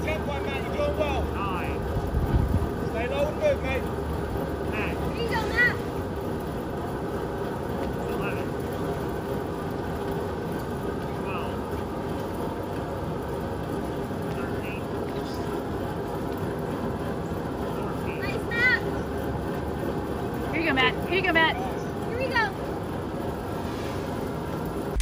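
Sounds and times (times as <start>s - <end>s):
drum fan whirring: 0.0s - 25.0s.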